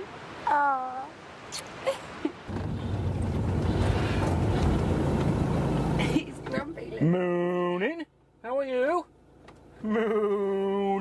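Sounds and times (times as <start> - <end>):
engine and road noise drone: 0.0 - 11.0.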